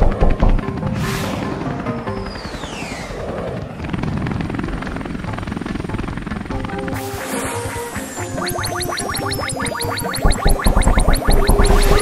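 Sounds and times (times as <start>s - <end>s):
rapid fluttering sound effect: 0.0s - 12.0s.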